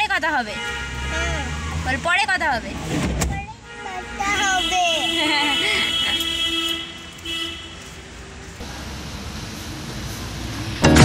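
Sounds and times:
car horn toots: 0.5 - 1.8, 3.7 - 7.8
car moving in parking garage: 0.6 - 11.0.

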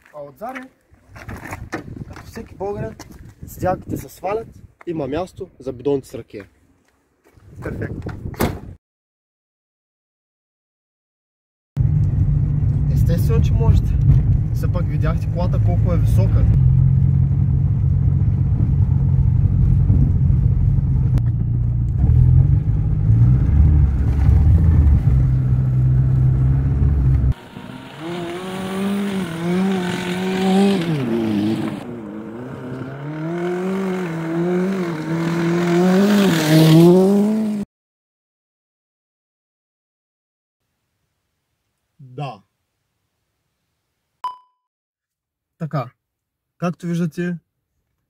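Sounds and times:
car engine and tyre drone: 11.8 - 37.6
car engine revving: 11.8 - 37.6.

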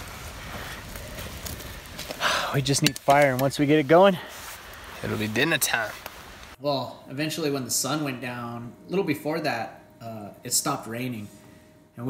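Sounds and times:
campfire hissing and crackling: 0.0 - 6.6.

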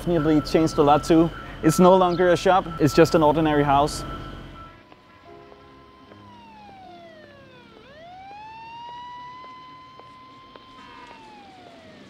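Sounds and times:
emergency vehicle siren wailing: 0.0 - 12.0.

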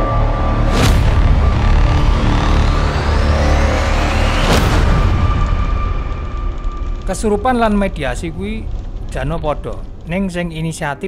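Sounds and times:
deep rumbling drone: 0.0 - 11.0
rising thin whines: 0.2 - 10.1.

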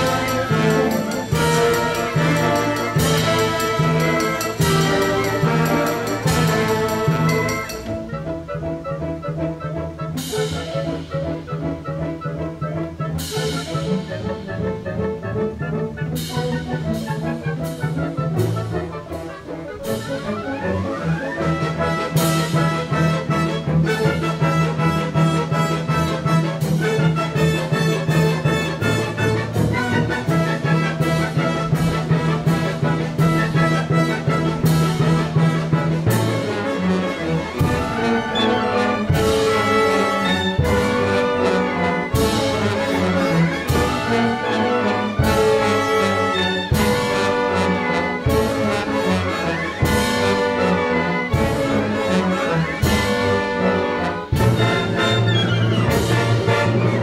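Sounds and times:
brass: 0.0 - 57.0
symphony orchestra playing: 0.0 - 57.0.

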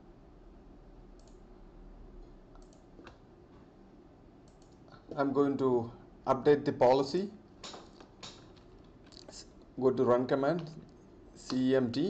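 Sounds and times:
low steady hum: 0.0 - 12.0
faint mouse clicks: 1.2 - 1.4, 2.2 - 3.2, 4.4 - 5.0.

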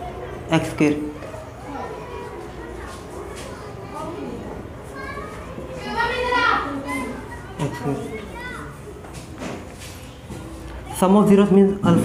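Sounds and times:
children calling and chattering: 0.0 - 12.0.

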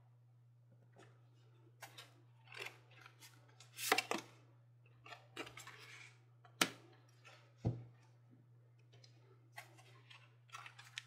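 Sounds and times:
cards rustling and snapping: 9.6 - 11.0.

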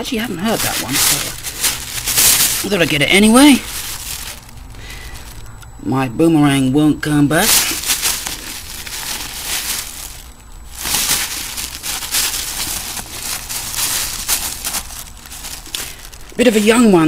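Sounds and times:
paper and bag rustling: 0.0 - 5.4, 7.3 - 17.0.

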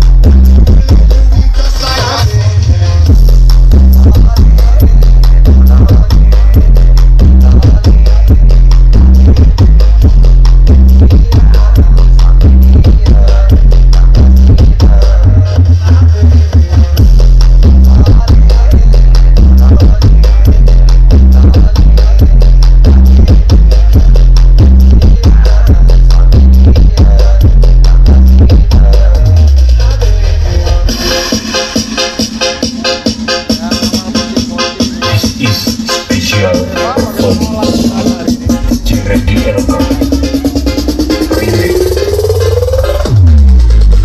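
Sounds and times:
loud electronic dance music: 0.0 - 44.0.

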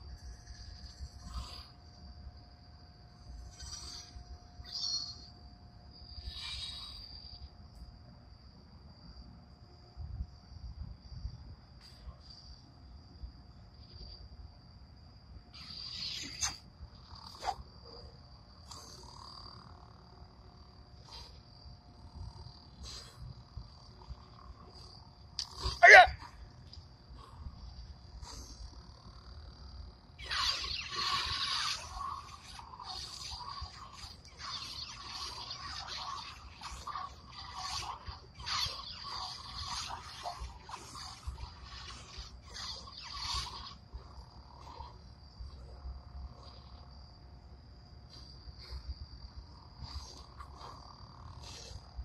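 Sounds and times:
crickets chirping: 0.0 - 52.0
lightsaber igniting and swinging: 15.6 - 17.6, 30.2 - 45.0.

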